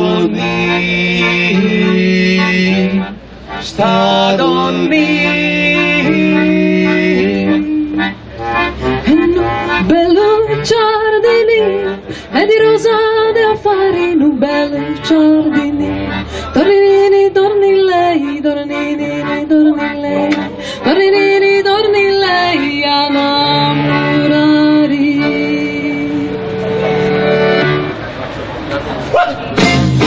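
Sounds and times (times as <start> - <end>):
acoustic guitar: 0.0 - 30.0
woman singing: 9.1 - 16.0, 16.6 - 26.2.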